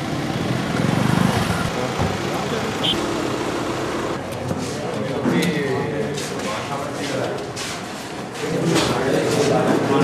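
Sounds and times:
car engine driving slowly: 0.0 - 4.4
crowd of men chattering: 1.6 - 10.0.

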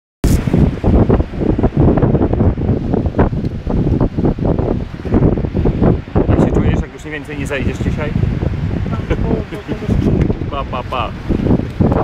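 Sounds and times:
surf breaking on shore: 0.2 - 12.0
wind buffeting microphone: 0.2 - 12.0.

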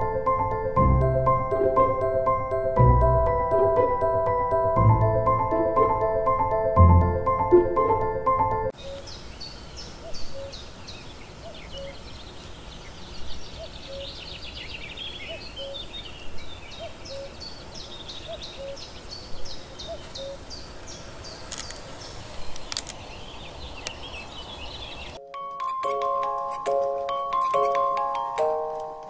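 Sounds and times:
small birds chirping: 8.7 - 25.2
fainter lower bird call: 8.8 - 25.2
sharp clicks: 22.5 - 23.0.

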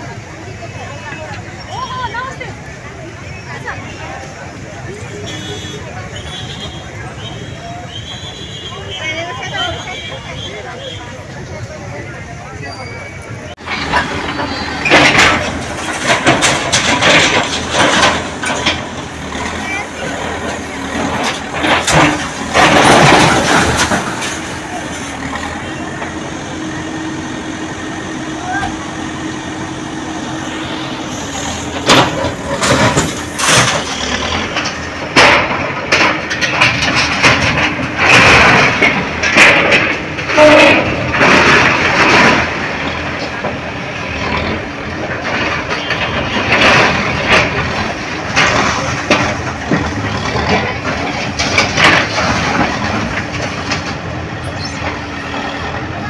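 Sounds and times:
backhoe engine droning: 0.0 - 56.0
concrete and debris crashing: 13.6 - 26.1, 30.6 - 56.0.

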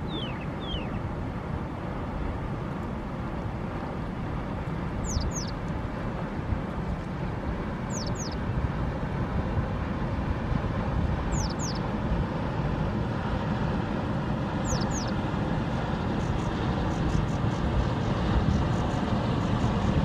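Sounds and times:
water: 0.0 - 20.0
wind: 0.0 - 20.0
bird whistling: 0.1 - 1.0, 5.1 - 5.5, 7.9 - 8.4, 11.4 - 11.8, 14.6 - 15.1.

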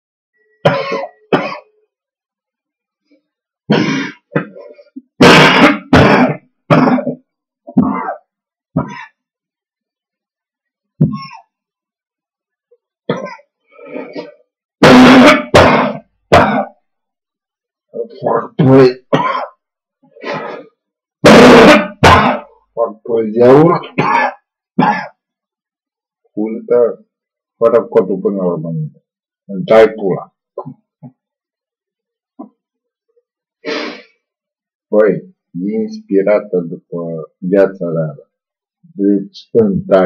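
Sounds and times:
man coughing: 0.6 - 1.7, 3.7 - 9.2, 11.0 - 11.5, 13.1 - 16.7, 18.2 - 19.6, 21.3 - 22.5, 23.7 - 25.2
man clearing his throat: 0.6 - 1.8, 3.7 - 9.2, 11.0 - 11.5, 13.1 - 16.8, 18.2 - 19.6, 21.3 - 22.5, 23.7 - 25.2
man muttering: 18.0 - 19.3.

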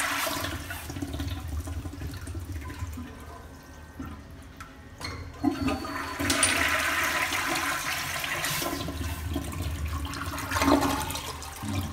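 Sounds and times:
toilet water rushing: 0.0 - 4.3, 5.4 - 11.9
short sharp flush valve sound: 8.2 - 9.3.

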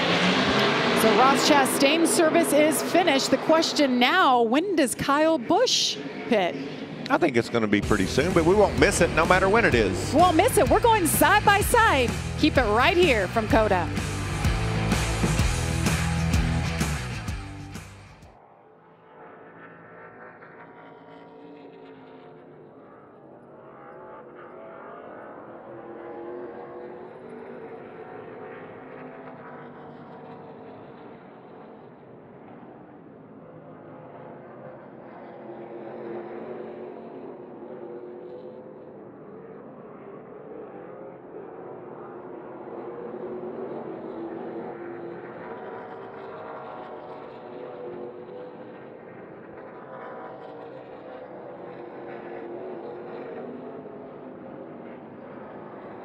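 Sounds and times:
race truck engines accelerating: 0.0 - 18.3, 19.0 - 56.0.

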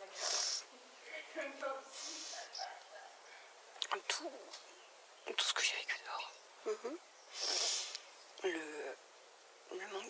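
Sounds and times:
person whispering: 3.8 - 4.4, 5.3 - 7.8.

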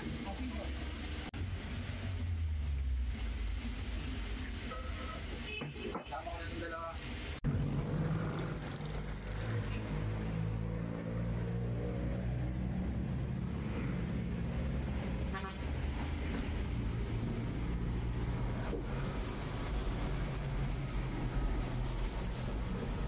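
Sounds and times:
vehicle engine drone: 1.3 - 5.2, 7.4 - 23.0
car horn toot: 5.4 - 6.2, 15.3 - 15.6.

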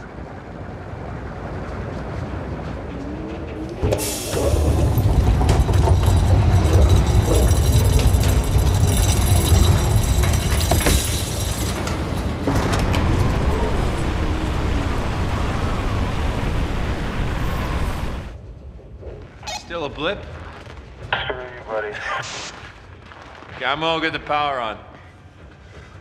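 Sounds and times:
blizzard wind rushing: 0.0 - 26.0.

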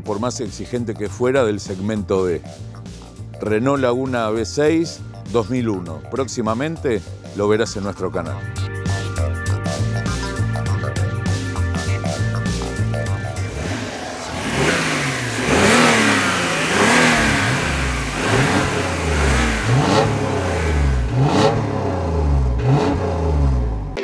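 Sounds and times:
background music: 0.0 - 24.0
car engine revving: 11.3 - 24.0.

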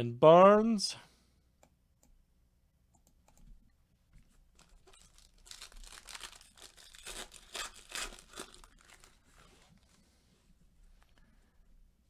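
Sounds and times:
wrapper tearing and crinkling: 4.6 - 10.0.

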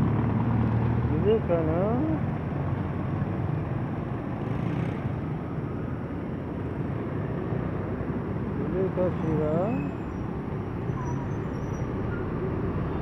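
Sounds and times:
passing cars and motorcycles: 0.0 - 13.0.

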